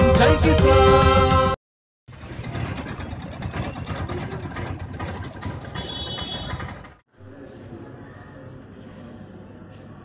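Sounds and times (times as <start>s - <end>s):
outdoor street noise: 0.0s - 10.0s
vehicle engine running: 2.1s - 7.0s.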